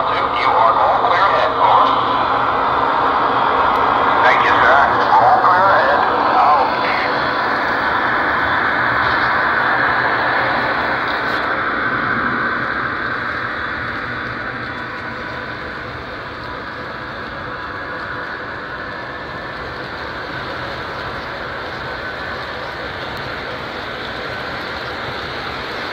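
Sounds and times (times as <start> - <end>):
model train rolling rumble: 0.0 - 25.9.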